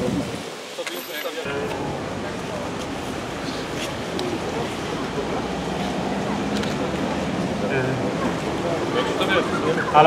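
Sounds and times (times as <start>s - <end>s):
people talking in background: 0.0s - 10.0s
steady outdoor hiss: 0.0s - 10.0s.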